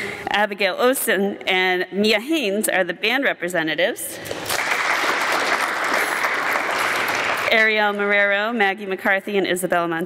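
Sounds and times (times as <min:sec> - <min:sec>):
audience applauding: 0:04.2 - 0:07.9.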